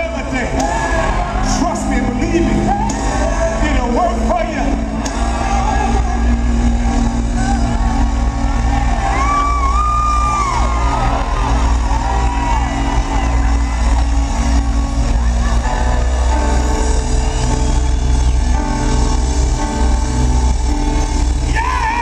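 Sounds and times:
band playing: 0.0 - 22.0.

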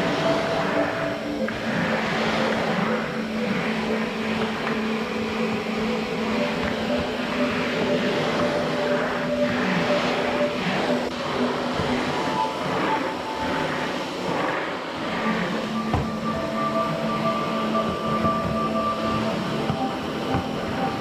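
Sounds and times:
vacuum cleaner running: 0.0 - 21.0.

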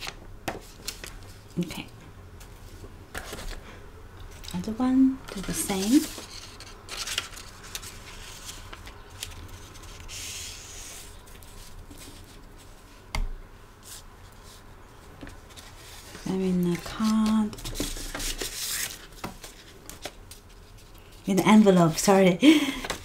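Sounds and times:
paper rustling on a desk: 5.3 - 12.9, 15.2 - 22.1.

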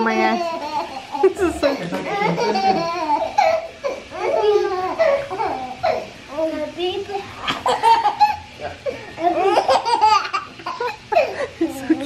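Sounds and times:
woman laughing: 0.2 - 3.3, 10.6 - 12.0
baby laughing: 0.4 - 1.4, 2.1 - 6.1, 7.5 - 8.5, 9.2 - 11.5.

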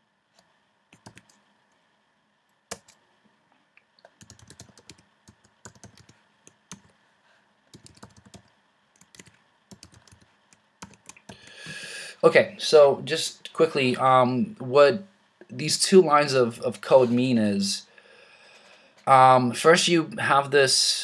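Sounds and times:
faint keyboard typing: 0.3 - 1.8, 2.7 - 3.0, 4.0 - 7.0, 7.7 - 11.5.

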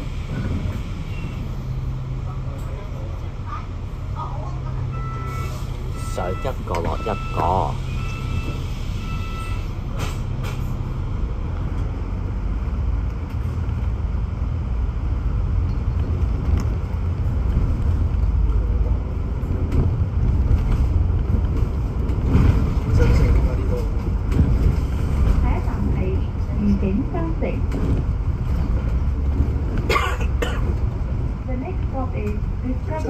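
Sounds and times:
bus engine rumble: 0.0 - 33.0
road noise: 0.0 - 33.0
bus door beeps: 4.8 - 10.2.

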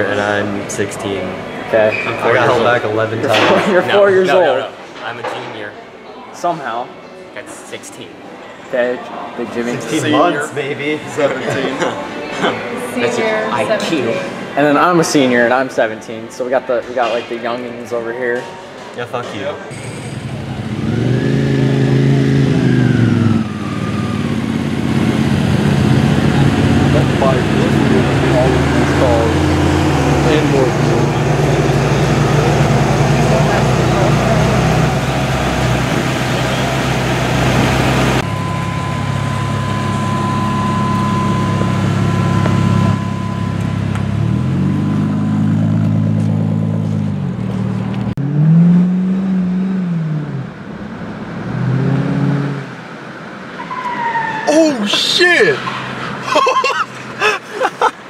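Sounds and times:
car engine idling and revving: 19.7 - 56.3.

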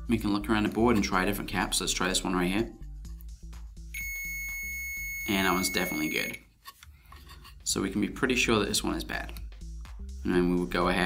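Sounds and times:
meter beeping high-pitched tone: 4.0 - 6.4.

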